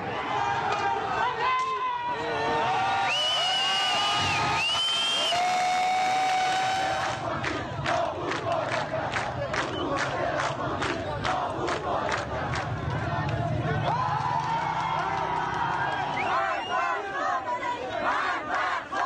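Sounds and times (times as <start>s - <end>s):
crowd shouting slogans: 0.0s - 19.0s.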